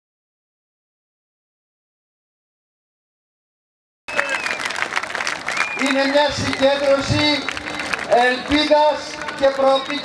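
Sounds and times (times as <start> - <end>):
large crowd applauding: 4.1 - 10.0
man speaking through a microphone: 5.8 - 10.0.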